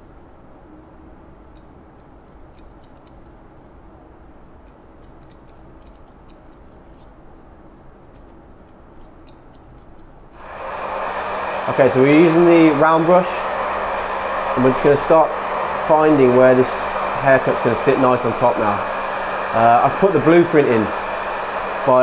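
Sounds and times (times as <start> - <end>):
scissors snipping hair: 1.4 - 3.4, 4.6 - 7.2, 8.1 - 10.4
hair dryer running: 10.4 - 22.0.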